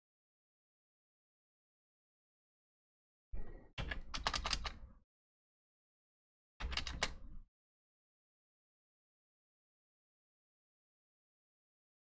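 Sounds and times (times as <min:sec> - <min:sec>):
typing on computer keyboard: 0:03.8 - 0:04.8, 0:06.6 - 0:07.3.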